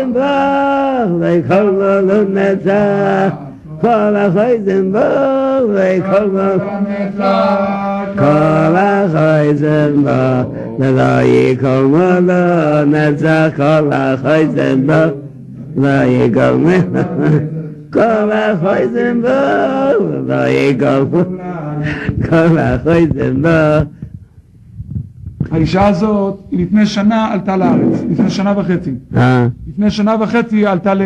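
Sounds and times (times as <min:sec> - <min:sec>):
man chanting wordless melody: 0:00.0 - 0:24.1, 0:25.4 - 0:31.0.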